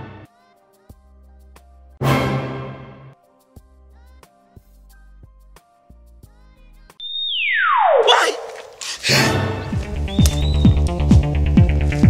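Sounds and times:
falling electronic sweep: 7.0s - 8.1s.

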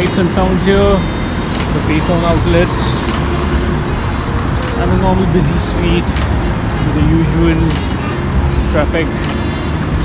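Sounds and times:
man's voice: 0.0s - 9.4s
passing cars rumble: 0.0s - 10.0s.

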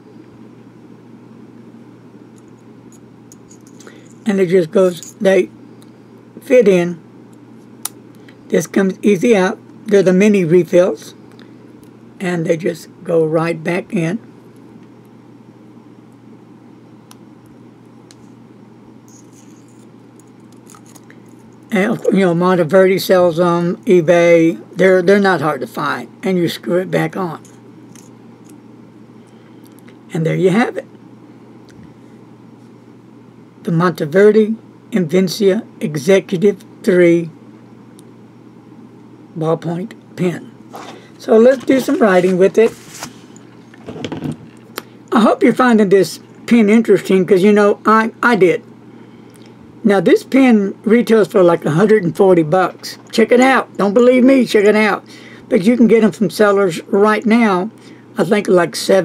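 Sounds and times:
low room hum: 0.0s - 59.0s
soft rustle: 40.7s - 43.7s.

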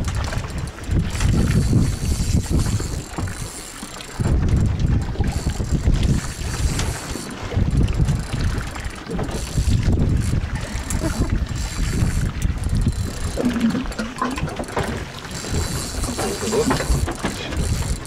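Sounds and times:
boat at sea: 0.0s - 18.0s
wind buffeting microphone: 0.0s - 18.0s.

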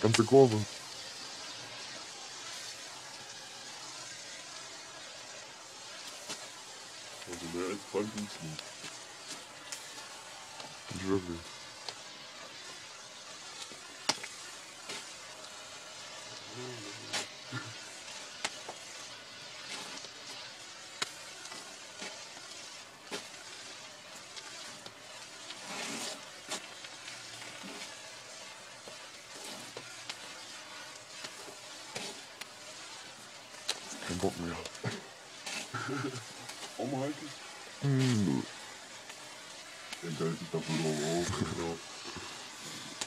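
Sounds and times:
flare burning with sizzling hiss: 0.0s - 43.0s
sharp crackles: 0.0s - 43.0s.

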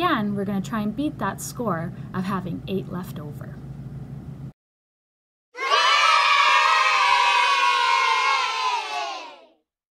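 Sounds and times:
children cheering: 5.6s - 9.6s.

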